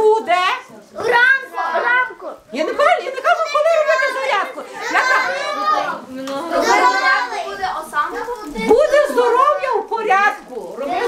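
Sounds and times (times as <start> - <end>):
woman's voice: 0.0 - 0.9, 2.5 - 4.7, 8.6 - 10.9
children calling out: 1.0 - 11.0.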